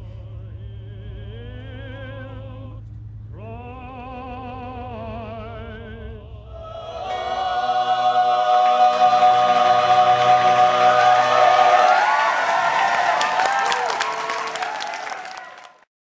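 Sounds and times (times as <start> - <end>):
singers holding a chord: 5.7 - 14.0
audience applause: 6.7 - 15.9.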